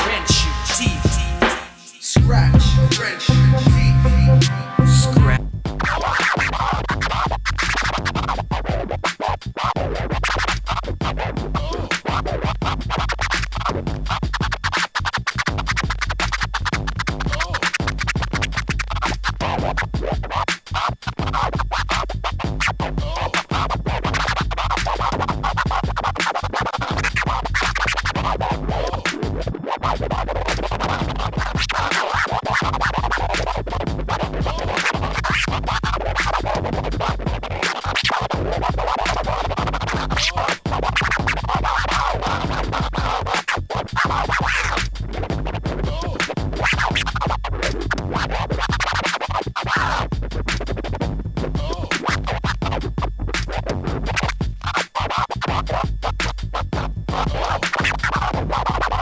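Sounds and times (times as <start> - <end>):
hip hop beat with bass: 0.0 - 59.0
vinyl record scratching: 0.0 - 59.0.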